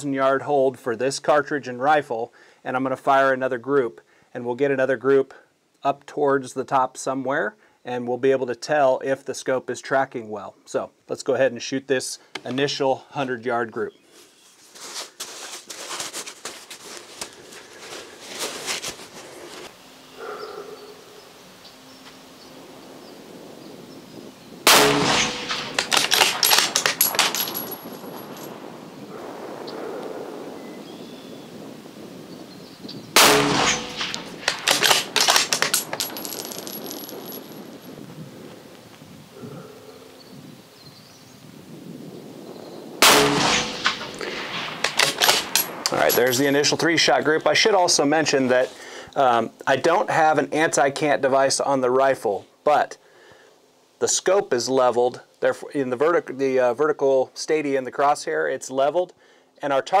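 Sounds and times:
rifle shots: 24.6 - 28.4, 33.2 - 37.1, 43.0 - 46.5
metallic clicks and clangs: 24.7 - 28.5, 33.2 - 37.6, 43.1 - 46.7.

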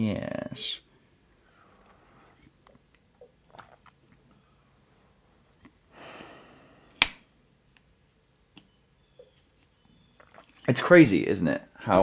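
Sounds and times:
breathy exhale: 5.9 - 7.0.

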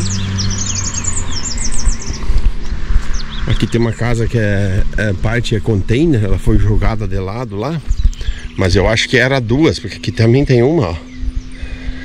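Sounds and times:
low rumble: 0.0 - 12.0
songbird chirping: 0.0 - 12.0
steady low hum: 0.0 - 12.0.

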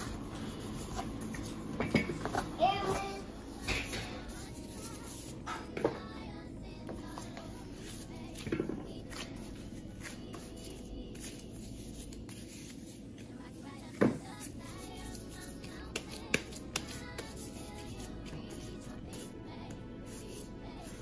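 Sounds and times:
child's voice: 2.4 - 6.5.

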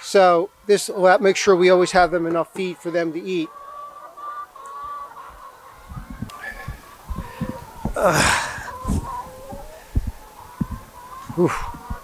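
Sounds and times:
hens calling: 0.0 - 12.0.

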